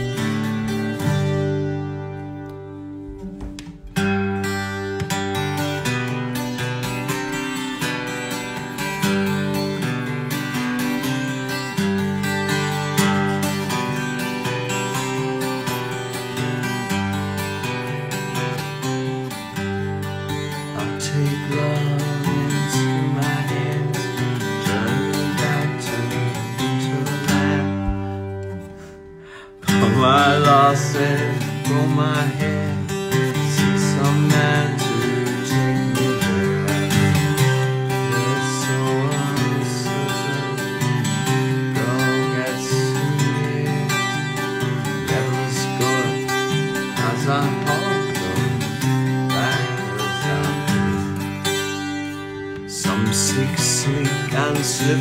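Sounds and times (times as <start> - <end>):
acoustic guitar strumming: 0.0 - 55.0
man singing: 20.3 - 28.8, 29.4 - 55.0.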